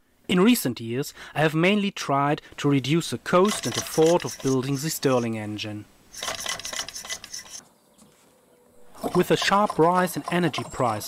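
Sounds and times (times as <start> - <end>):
engine mechanism rasping clatter: 3.4 - 4.7, 6.1 - 7.6, 8.8 - 11.0.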